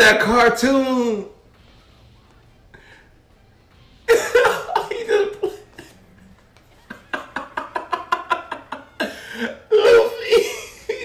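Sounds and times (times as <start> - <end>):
man laughing in bursts: 4.1 - 6.0, 6.8 - 11.0.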